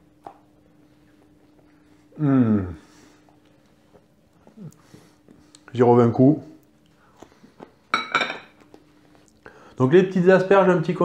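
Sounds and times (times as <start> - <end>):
glass clinking on worktop: 7.9 - 8.6.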